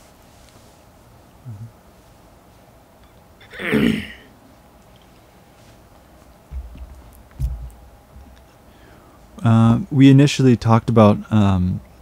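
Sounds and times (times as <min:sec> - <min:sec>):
man clearing throat: 0:03.4 - 0:04.3.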